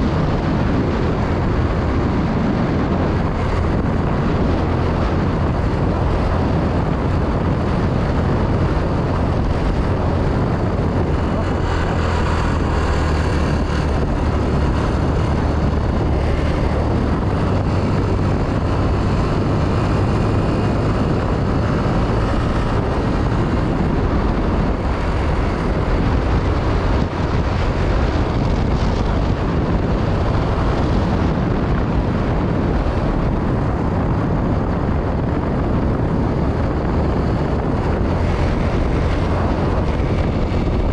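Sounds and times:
motorcycle engine running: 0.0 - 40.9
wind and road noise: 0.0 - 40.9.

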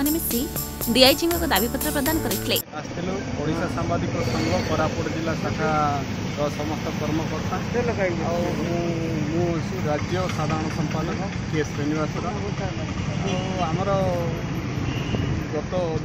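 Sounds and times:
man speaking: 2.6 - 14.6.

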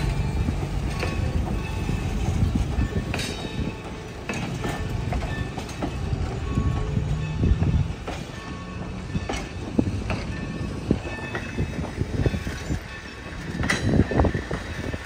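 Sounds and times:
clanks over rail joints: 0.0 - 15.0
train wheels rumbling: 0.0 - 15.0.

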